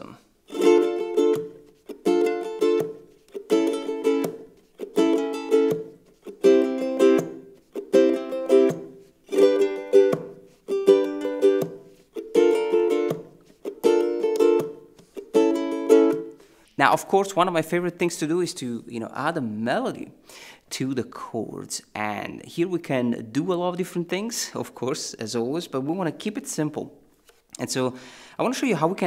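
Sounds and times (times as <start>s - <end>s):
ukulele strumming: 0.0s - 17.4s
percussive thumb strike on strings: 1.1s - 16.3s.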